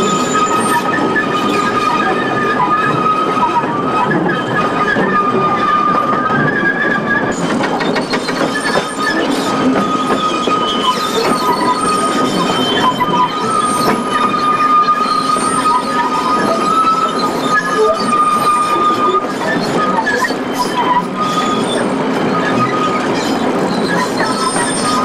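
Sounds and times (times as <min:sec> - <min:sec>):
train wheels rumbling on track: 0:00.0 - 0:25.0
wheel flanges squealing: 0:00.0 - 0:25.0.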